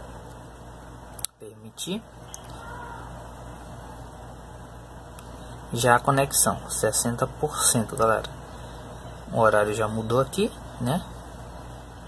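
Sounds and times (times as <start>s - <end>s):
room tone hum and hiss: 0.0s - 12.0s.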